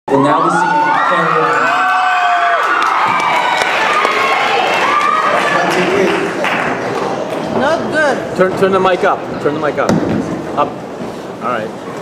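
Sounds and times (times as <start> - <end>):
audience cheering and shouting: 0.1 - 7.3.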